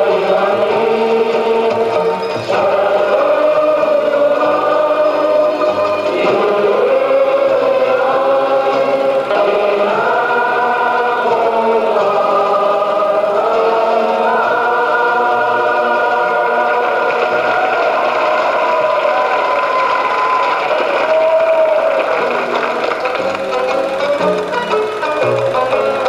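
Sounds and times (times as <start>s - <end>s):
choral music with sustained chords: 0.0s - 20.4s.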